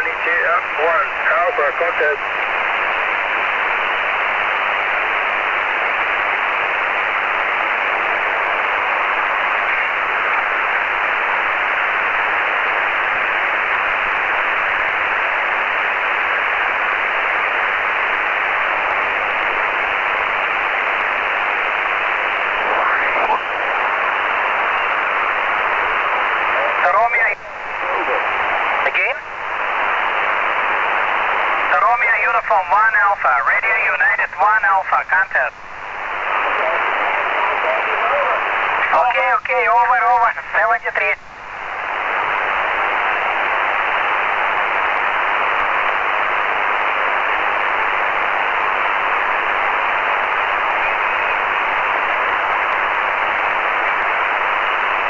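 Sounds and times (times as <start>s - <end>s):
distorted warbling radio voice: 0.0s - 2.3s, 22.5s - 24.1s, 26.4s - 29.3s, 31.6s - 35.6s, 36.2s - 41.2s
faint wavering radio voices: 0.0s - 55.0s
radio band noise hiss: 0.0s - 55.0s.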